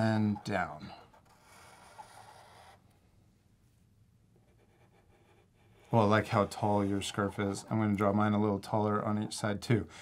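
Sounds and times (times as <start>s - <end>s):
marker scratching on paper: 0.0s - 2.9s, 4.4s - 8.4s.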